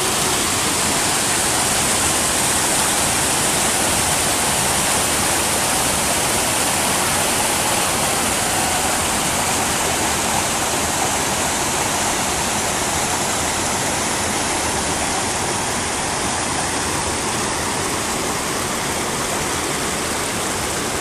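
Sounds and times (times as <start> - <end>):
creek water rushing over rocks: 0.0 - 21.0.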